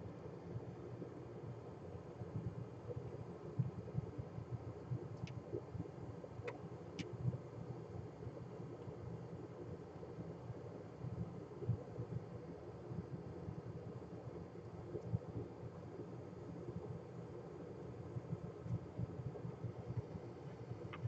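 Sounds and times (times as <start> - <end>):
faint hum: 0.0 - 21.0.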